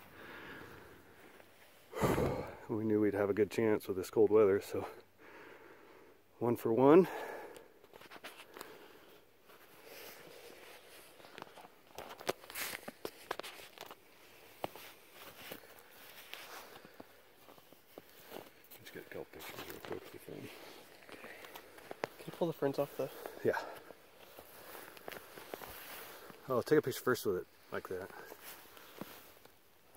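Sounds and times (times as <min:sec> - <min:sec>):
small clicks and rustles: 0:09.5 - 0:18.6, 0:20.8 - 0:22.4, 0:24.1 - 0:26.4
footsteps in snow: 0:24.2 - 0:26.4.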